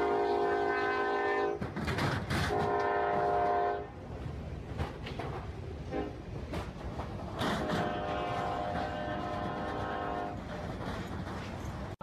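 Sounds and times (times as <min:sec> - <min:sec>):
train horn blast: 0:00.0 - 0:01.7, 0:02.5 - 0:04.0, 0:05.9 - 0:06.2, 0:07.4 - 0:10.4
train rumbling: 0:00.0 - 0:12.0.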